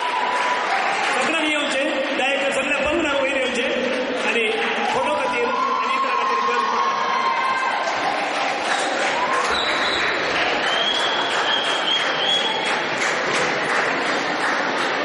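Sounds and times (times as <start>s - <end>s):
audience clapping: 0.0s - 15.0s.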